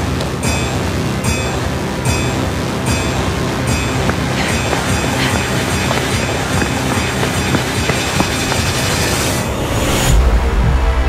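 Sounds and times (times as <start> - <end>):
loud clattering noise: 0.0 - 10.5
trailer music: 0.0 - 11.0
hiss: 4.3 - 10.2.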